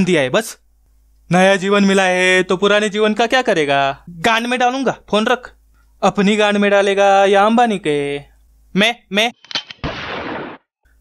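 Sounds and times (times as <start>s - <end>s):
gunshot sound effect: 9.8s - 10.7s.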